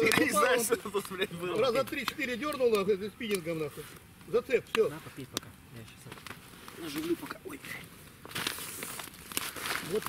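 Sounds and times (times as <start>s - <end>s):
jacket rustling and crinkling: 6.0s - 10.0s
small crunches: 8.2s - 10.0s.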